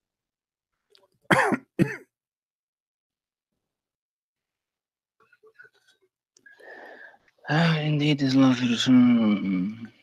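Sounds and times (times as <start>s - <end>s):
person coughing: 1.3s - 2.1s.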